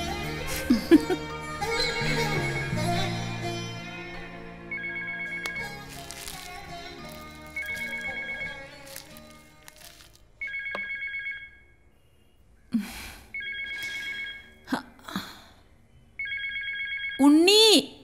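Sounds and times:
background music: 0.0s - 10.6s
short electronic phone rings: 10.4s - 11.7s, 13.4s - 14.6s.

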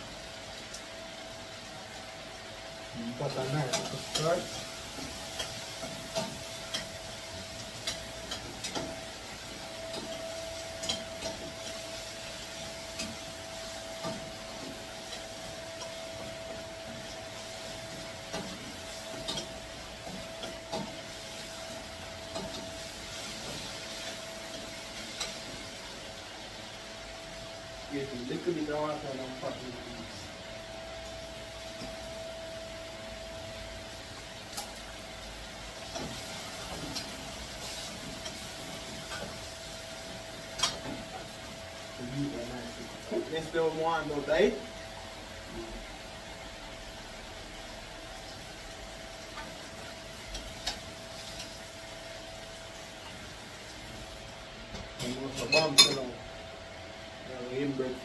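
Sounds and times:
gas stove hissing: 0.0s - 58.0s.

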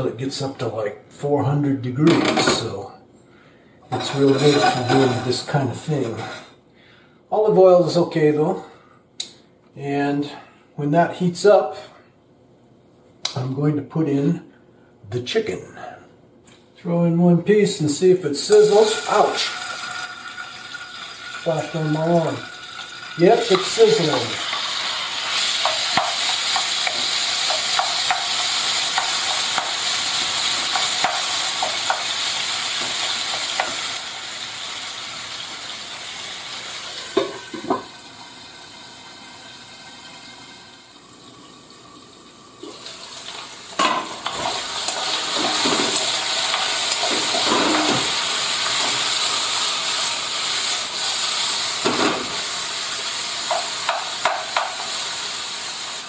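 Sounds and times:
chicken sizzling in oil: 18.5s - 56.0s.

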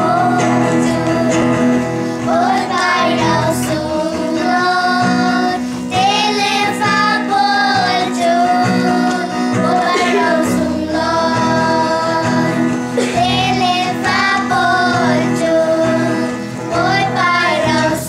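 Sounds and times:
children singing: 0.0s - 18.0s.

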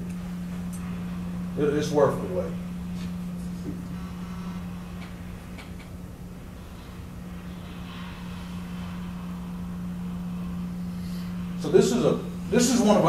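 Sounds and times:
faint rumble: 0.0s - 13.0s
low electrical hum: 0.0s - 13.0s.

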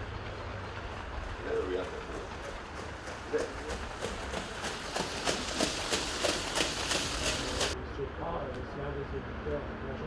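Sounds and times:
horse hoofbeats trotting on sand: 0.0s - 7.8s.

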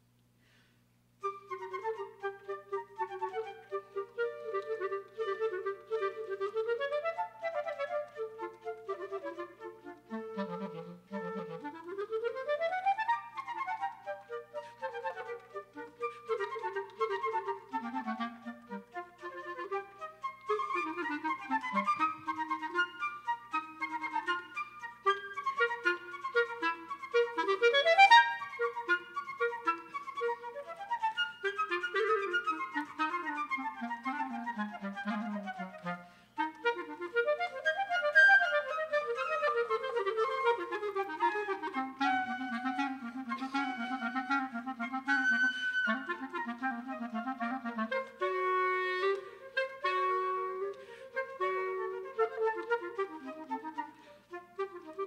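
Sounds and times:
clarinet running scales: 1.2s - 55.0s
flute melody: 1.2s - 55.0s.

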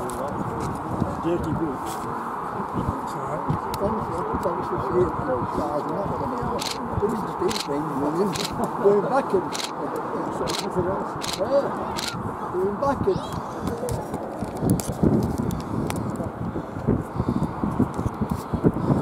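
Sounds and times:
people talking: 0.0s - 14.7s
regular clicking: 9.5s - 9.7s.

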